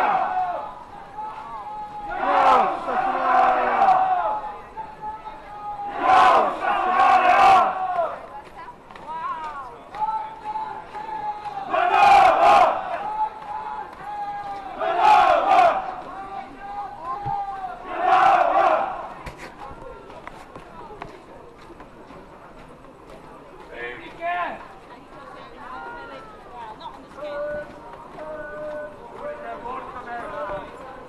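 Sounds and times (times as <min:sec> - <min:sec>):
group of voices shouting together: 0:01.8 - 0:04.4, 0:05.8 - 0:08.2, 0:11.1 - 0:16.2, 0:17.4 - 0:19.1.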